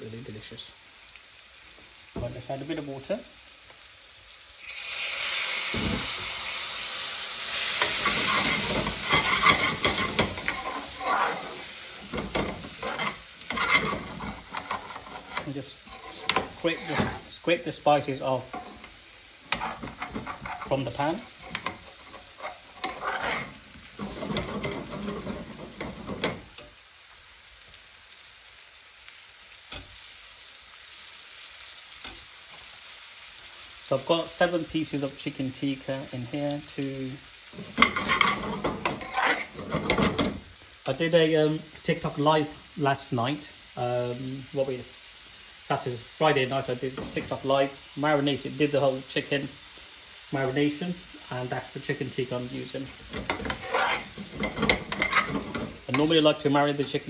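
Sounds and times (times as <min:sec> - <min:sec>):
loud steady sizzle: 0:00.0 - 0:57.0
metal spoon scraping a pan: 0:07.5 - 0:17.4, 0:18.1 - 0:26.8, 0:36.9 - 0:40.5, 0:46.8 - 0:47.6, 0:52.6 - 0:56.5.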